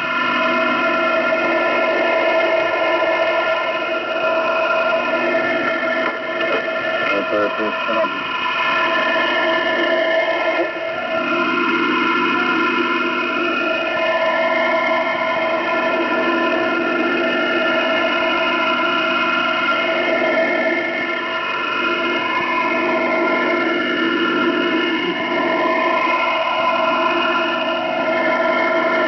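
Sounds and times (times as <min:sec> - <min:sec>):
drone of fixed tones: 0:00.0 - 0:29.0
radio static hiss: 0:06.5 - 0:08.2.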